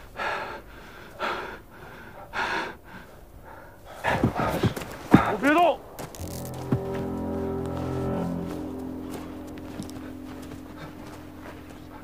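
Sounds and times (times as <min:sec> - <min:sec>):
man breathing heavily: 0:00.0 - 0:05.4.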